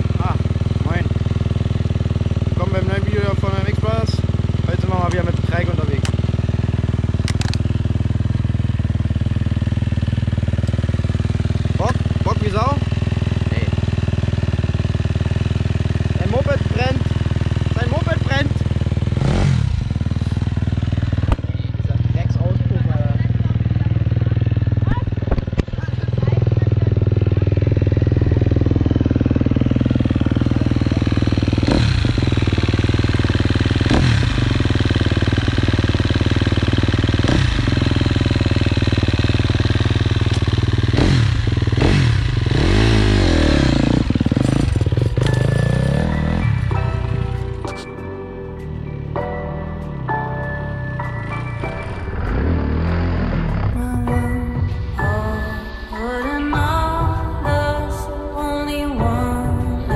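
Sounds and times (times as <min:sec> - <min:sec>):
motorcycle engine revving: 0:00.0 - 0:57.8.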